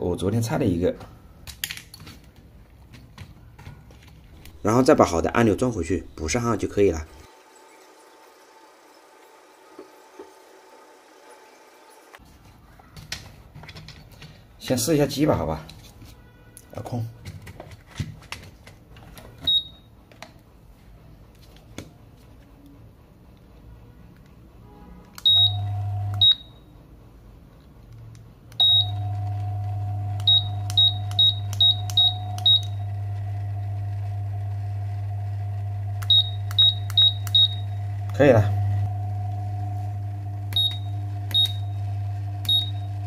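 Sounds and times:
fan running hum: 19.0 - 43.0
short high beeps: 25.2 - 26.6, 28.6 - 29.2, 30.2 - 32.9, 36.1 - 37.8, 40.5 - 41.8, 42.5 - 42.9.

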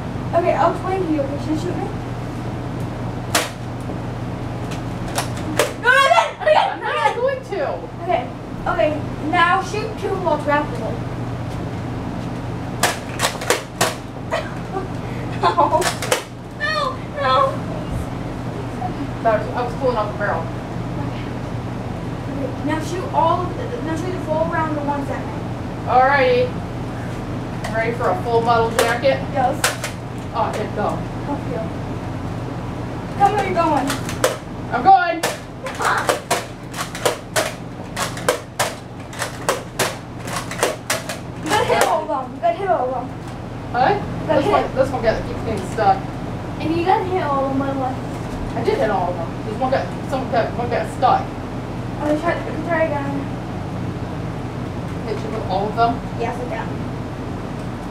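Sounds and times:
toy blaster plastic clacks: 35.2 - 42.0.

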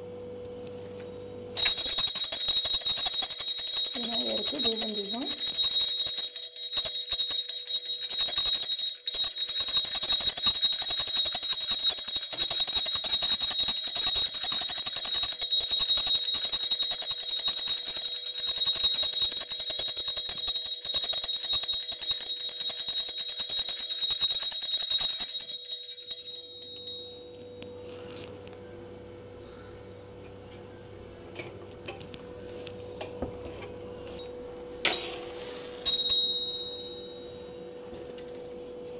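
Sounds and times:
brass bell ringing fast: 1.6 - 27.3.

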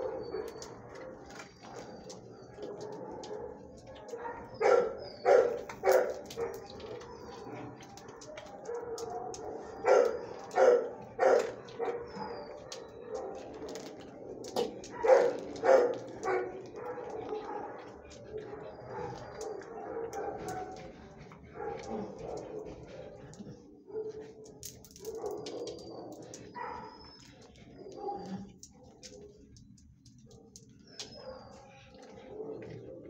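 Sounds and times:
dog barking: 0.0 - 13.6, 14.8 - 20.8, 21.5 - 23.2, 23.8 - 24.4, 25.0 - 27.1, 27.7 - 29.3, 31.1 - 33.0
kennel background din: 0.0 - 33.0.

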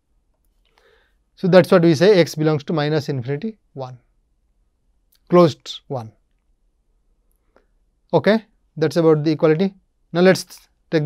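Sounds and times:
man speaking: 1.4 - 4.0, 5.2 - 6.2, 8.1 - 11.0.

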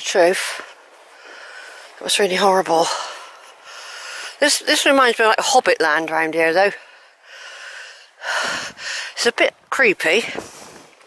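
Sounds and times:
person breathing: 1.0 - 2.0, 2.8 - 4.4, 6.8 - 9.2.

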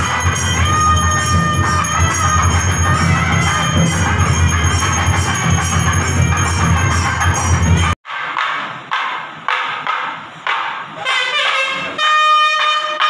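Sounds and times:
bells: 0.0 - 8.0
struck ringing notes: 0.0 - 8.0
wind instrument sustained notes: 0.0 - 8.0, 11.0 - 13.0
drumming: 0.0 - 13.0.

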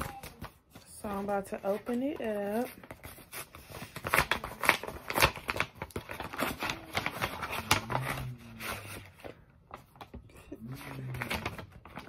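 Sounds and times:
paper rustling: 0.0 - 12.0
paper envelope tearing: 2.7 - 9.2, 10.6 - 12.0.

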